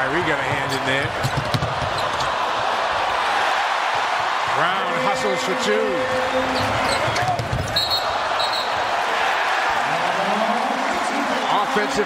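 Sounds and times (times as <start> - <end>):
arena crowd noise: 0.0 - 12.0
basketball bouncing on hardwood: 0.5 - 2.0
sneaker squeaks: 6.3 - 8.8.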